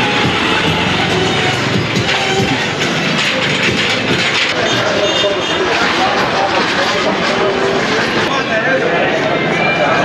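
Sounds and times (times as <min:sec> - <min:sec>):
passers-by voices: 0:00.0 - 0:10.0
street noise: 0:00.0 - 0:10.0.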